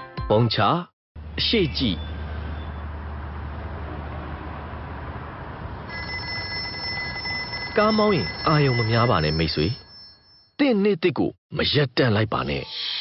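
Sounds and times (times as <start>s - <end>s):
phone ringing: 5.9s - 10.6s.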